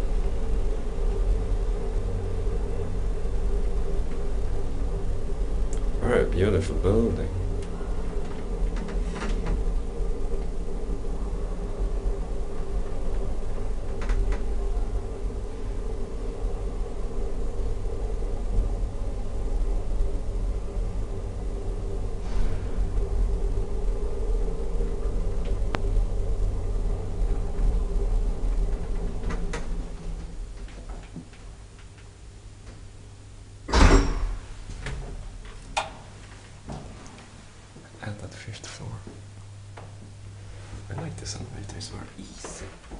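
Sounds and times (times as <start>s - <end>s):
elevator hum and rumble: 0.0s - 42.9s.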